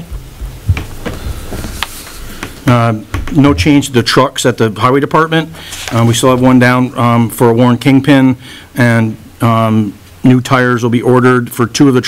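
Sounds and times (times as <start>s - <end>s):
microphone handling bumps: 0.0s - 4.0s.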